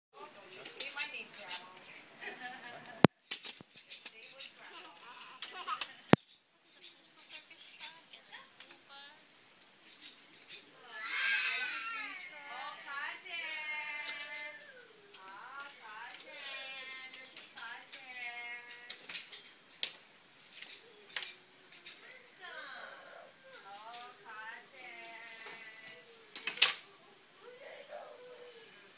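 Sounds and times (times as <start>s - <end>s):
child squealing: 10.8s - 12.3s.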